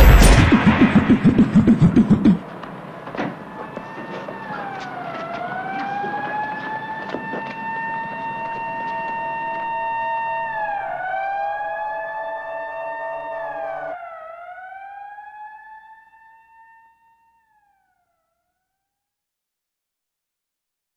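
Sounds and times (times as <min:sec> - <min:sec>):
pulsing low electronic layer: 0:00.0 - 0:02.5
siren-like wailing electronic tone: 0:00.0 - 0:02.5, 0:03.4 - 0:18.3.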